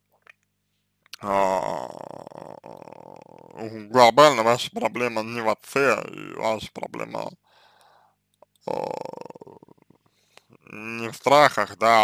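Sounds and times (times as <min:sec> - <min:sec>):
man's creaky hesitation sound: 0:01.2 - 0:03.8, 0:08.4 - 0:11.0.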